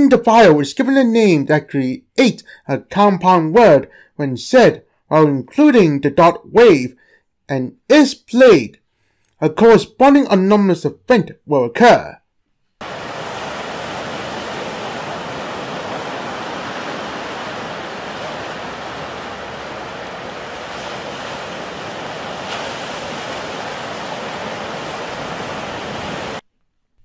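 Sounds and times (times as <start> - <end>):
waves breaking on shore: 12.8 - 26.4.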